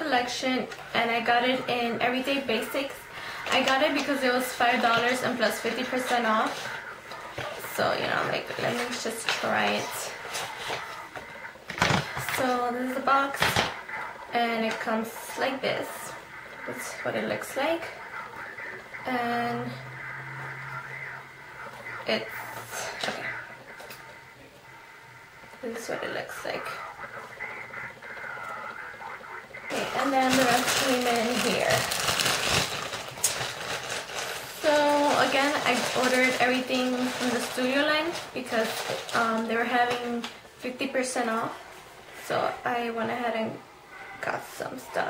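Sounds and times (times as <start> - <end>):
plastic bag crinkling: 29.7 - 40.4.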